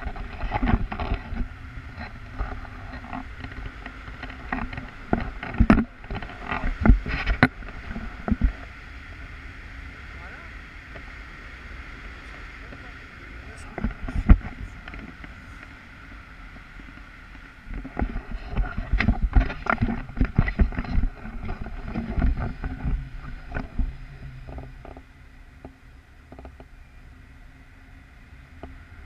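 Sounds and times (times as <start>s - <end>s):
wind rushing over microphone: 0.0s - 26.6s.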